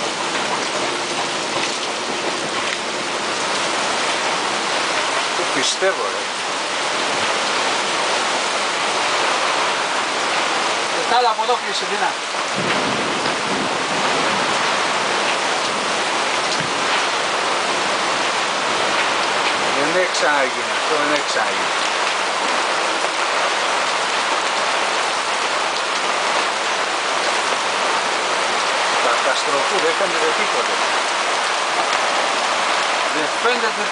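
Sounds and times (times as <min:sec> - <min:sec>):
heavy rain on canvas cover: 0:00.0 - 0:33.9.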